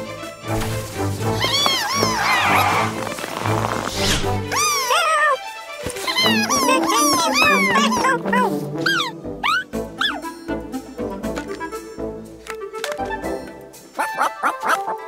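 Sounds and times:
cartoon music with bass line: 0:00.5 - 0:15.0
high squeaky creature vocalizations: 0:01.3 - 0:10.2.

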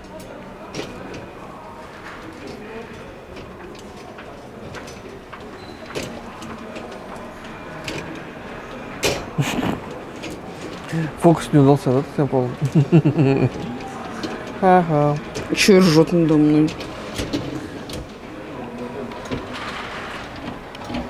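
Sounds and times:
murmur of background voices: 0:00.0 - 0:21.0
dishwasher rack clicking and rattling: 0:12.7 - 0:18.2.

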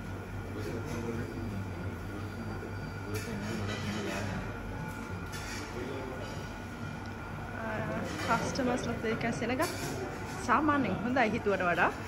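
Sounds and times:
low rumble and hum: 0:04.2 - 0:09.4.

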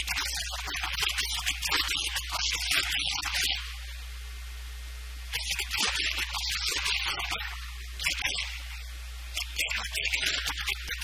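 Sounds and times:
low electrical hum and hiss: 0:00.0 - 0:11.0.

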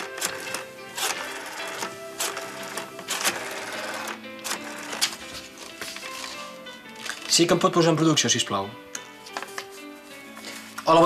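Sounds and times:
rotary phone dial whirring: 0:00.0 - 0:05.2
television music: 0:00.0 - 0:11.0.

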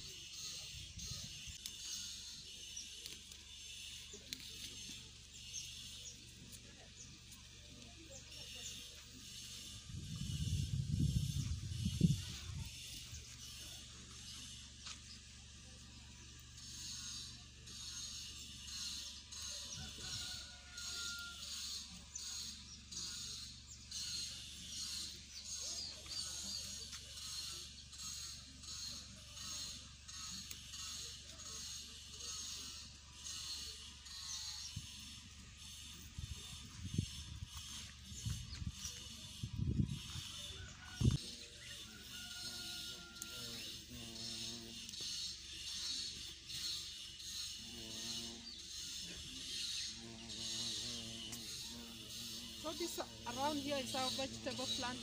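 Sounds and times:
pulsing insect chorus: 0:00.0 - 0:55.0.

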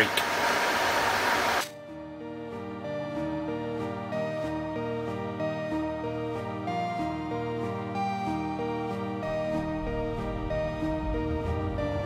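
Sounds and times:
background music of held notes: 0:01.7 - 0:12.0.

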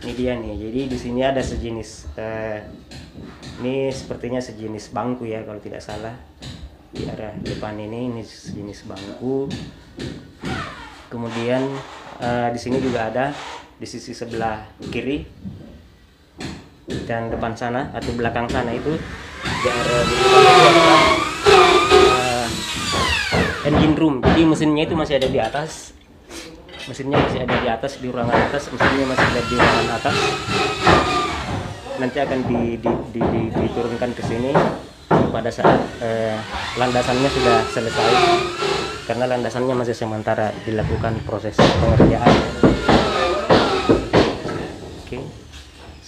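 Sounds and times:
sharp knocks on wood: 0:06.4 - 0:07.7, 0:08.5 - 0:10.8, 0:21.8 - 0:24.6, 0:27.1 - 0:36.0, 0:40.8 - 0:45.0.

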